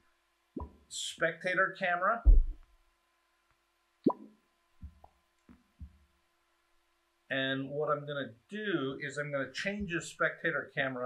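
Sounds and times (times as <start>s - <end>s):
soft low thumps: 2.2s - 2.8s, 4.8s - 5.1s, 9.8s - 10.1s.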